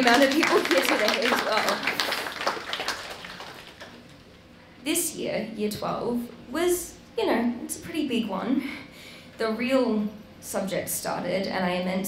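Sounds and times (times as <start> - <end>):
audience clapping: 0.0 - 4.3.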